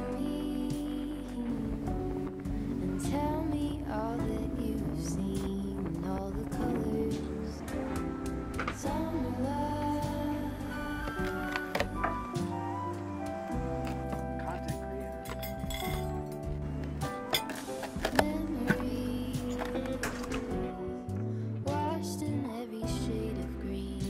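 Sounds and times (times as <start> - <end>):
background music: 0.0 - 24.0.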